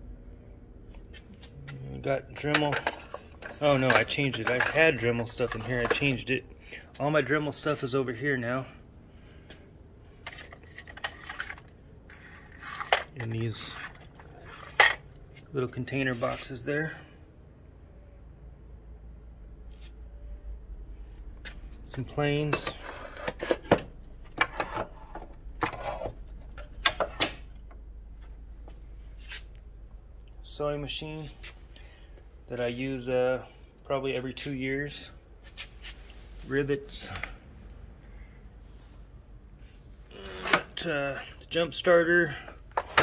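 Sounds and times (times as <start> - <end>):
small parts rattling in plastic: 10.2 - 15.0.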